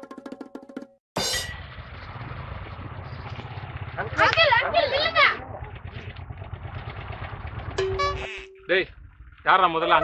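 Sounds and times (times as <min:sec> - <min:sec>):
motorcycle engine idling: 0:01.6 - 0:10.0
steady pitched tone: 0:07.8 - 0:09.1.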